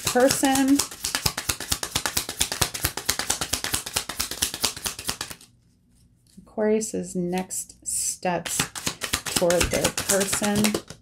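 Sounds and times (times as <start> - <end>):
cards being shuffled: 0.0 - 5.6, 8.4 - 11.0.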